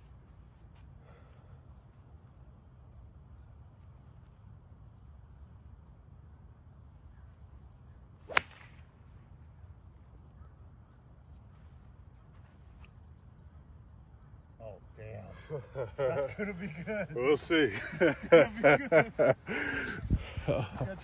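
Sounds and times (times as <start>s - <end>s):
faint outdoor background: 0.0s - 21.0s
golf club striking ball: 8.3s - 8.9s.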